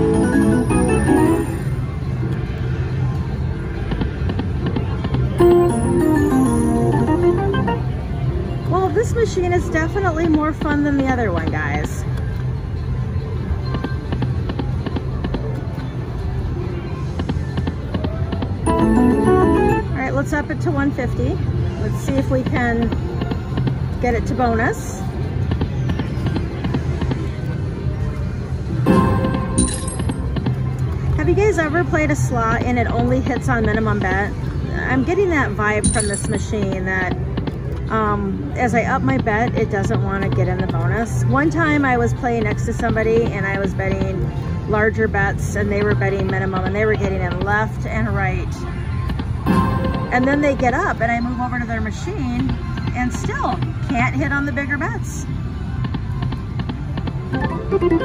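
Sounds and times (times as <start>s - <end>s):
casino din: 0.0s - 1.7s, 5.4s - 8.0s, 18.7s - 20.0s, 28.9s - 30.5s, 49.5s - 50.9s
slot machine spin clicks: 0.0s - 1.7s, 5.4s - 7.9s, 18.7s - 20.0s, 28.9s - 30.4s
electronic win melody: 0.0s - 1.8s, 5.4s - 8.2s, 18.7s - 20.0s, 28.9s - 30.4s, 49.5s - 50.9s, 57.4s - 58.0s.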